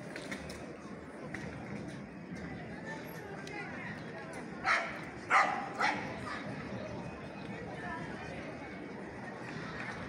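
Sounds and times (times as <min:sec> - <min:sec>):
street crowd murmur: 0:00.0 - 0:10.0
dog barking: 0:04.7 - 0:06.0.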